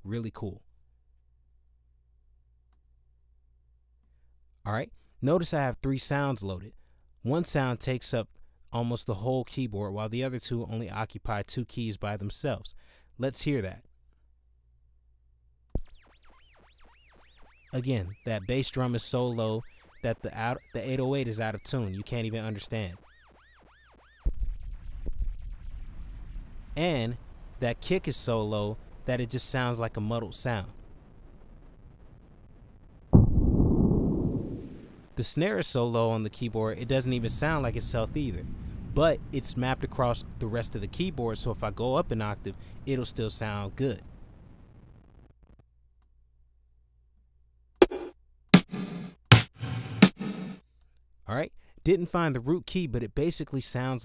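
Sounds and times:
deep muddy pitched-down kick rumble: 33.2s - 35.0s
pitch-shifted snare drum hits: 47.8s - 50.6s.

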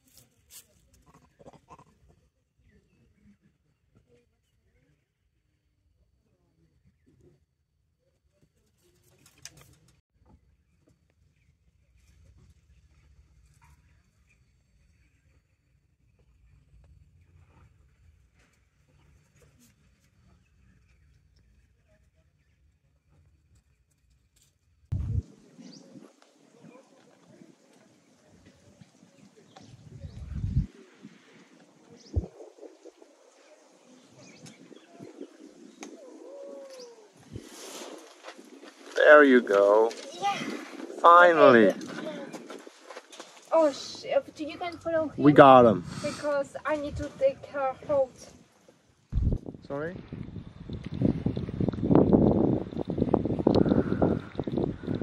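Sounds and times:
low rumbling: 24.9s - 25.4s, 29.8s - 30.7s, 49.1s - 55.0s
bird calling: 33.1s - 37.2s.

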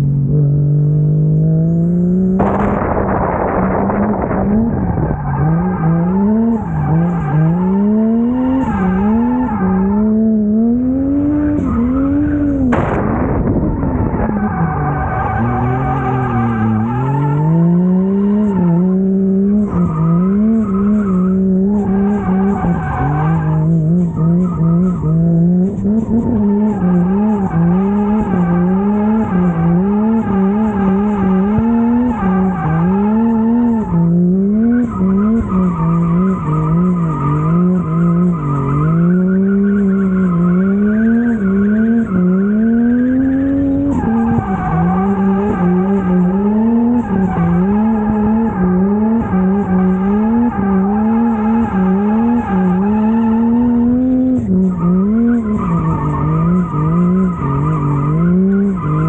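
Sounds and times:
car engine revving: 0.0s - 59.0s
tyres squealing on asphalt: 3.7s - 12.7s, 13.5s - 59.0s.

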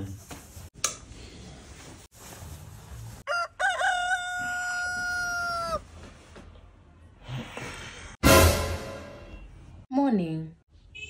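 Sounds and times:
rooster crowing: 3.3s - 5.8s.

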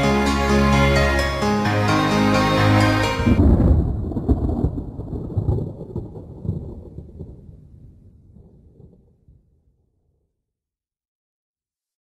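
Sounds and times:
band music: 0.0s - 3.4s
thunder rumbling: 3.2s - 10.0s.

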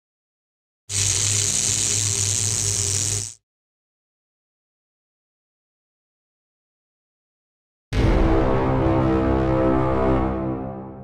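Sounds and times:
low buzzing hum: 0.9s - 3.4s
static-like hiss: 0.9s - 3.4s.

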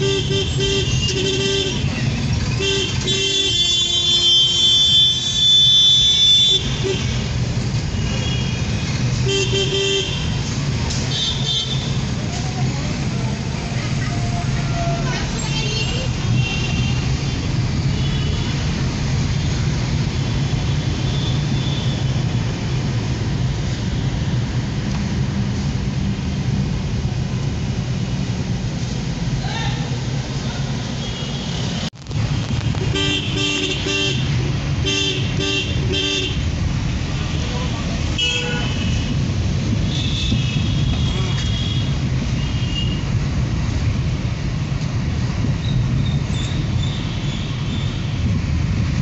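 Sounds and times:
engine and road rumble: 0.0s - 49.0s
loud vehicle horn: 38.2s - 39.2s.

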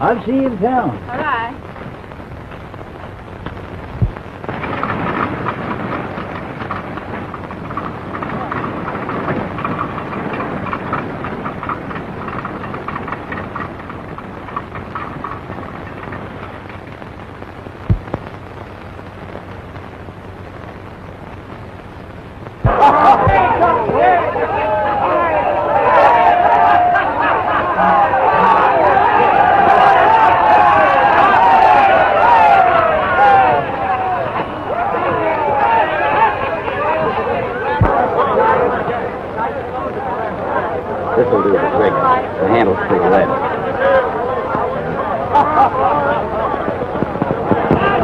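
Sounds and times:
film soundtrack hiss and crackle: 0.0s - 48.0s
sharp low pops: 1.6s - 24.1s
crowd shouting and chatter: 22.6s - 48.0s.

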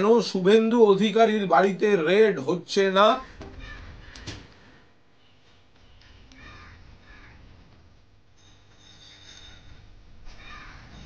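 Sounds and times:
crow cawing: 3.3s - 4.9s, 6.4s - 7.4s, 10.3s - 11.0s.

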